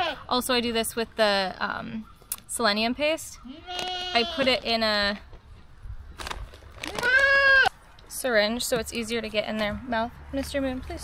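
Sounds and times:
goat kid bleating: 0.0s - 0.3s, 3.4s - 4.6s, 6.9s - 7.8s.

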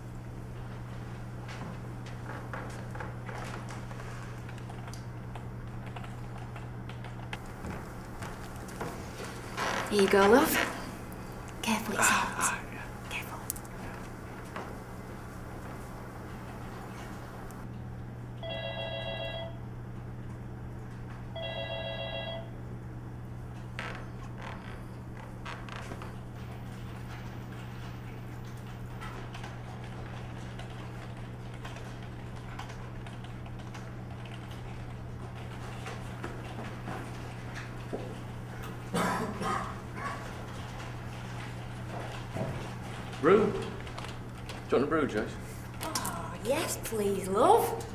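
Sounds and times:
steady electrical hum: 0.0s - 47.9s
electronic telephone ringing: 18.4s - 19.6s, 21.3s - 22.5s.

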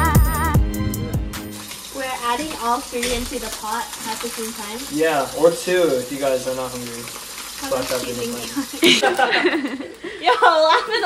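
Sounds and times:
background music: 0.0s - 1.7s
water running from tap into sink: 1.4s - 11.0s.

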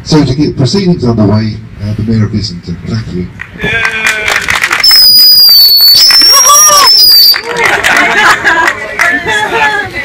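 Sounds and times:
crowd clapping: 3.4s - 9.8s
loud high-pitched whistle: 4.8s - 7.5s.

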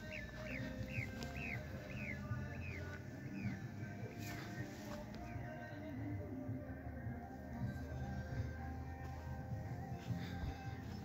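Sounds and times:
bird chirping: 0.0s - 5.6s
background music: 0.0s - 11.0s.

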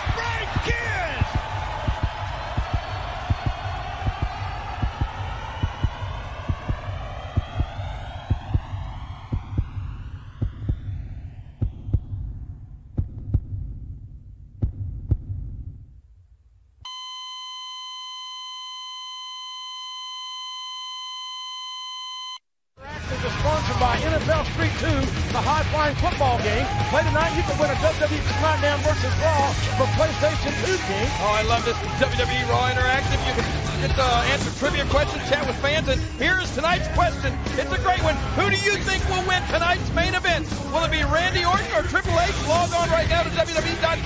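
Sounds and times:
muffled low thumping: 1.2s - 16.1s
buzzy electronic beep tone: 16.9s - 22.4s.

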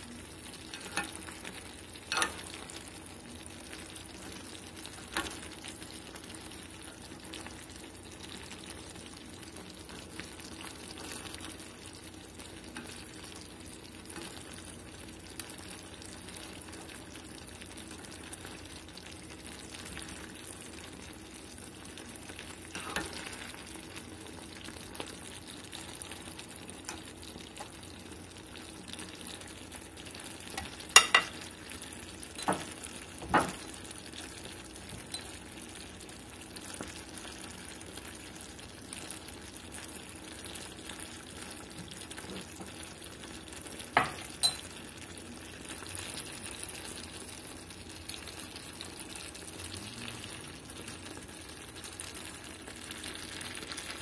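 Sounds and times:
meat sizzling in a clay pot: 0.0s - 54.0s.

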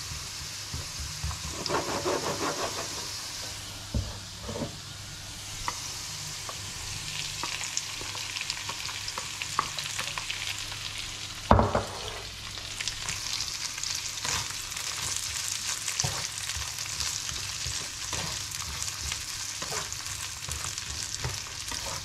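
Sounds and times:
food sizzling in a frying pan: 0.0s - 22.0s
spatula scraping and stirring: 0.1s - 3.2s, 4.2s - 4.8s, 14.2s - 22.0s.

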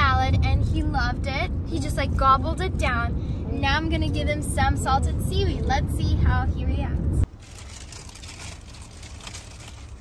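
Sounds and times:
car road noise hum: 0.0s - 10.0s.

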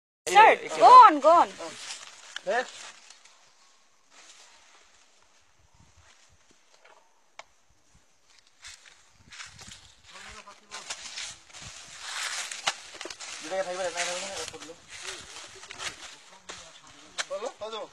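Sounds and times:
rustling noise: 7.9s - 17.2s.

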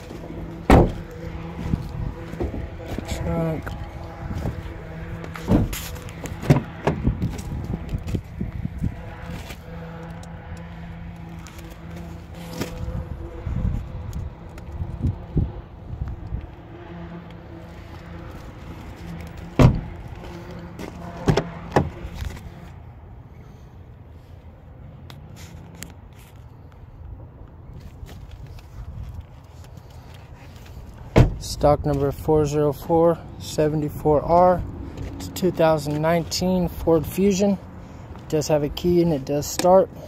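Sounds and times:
sharp knocks and thumps: 0.7s - 1.0s, 5.4s - 8.2s, 19.6s - 20.0s.

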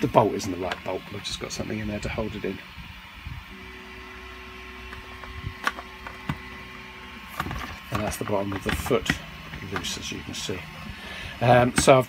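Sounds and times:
stepper motors humming: 0.0s - 12.0s
plastic parts knocking together: 7.3s - 10.0s, 11.7s - 12.0s.

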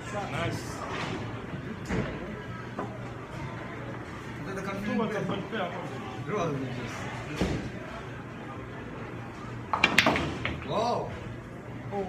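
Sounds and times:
indoor games hall background noise: 0.0s - 12.0s.

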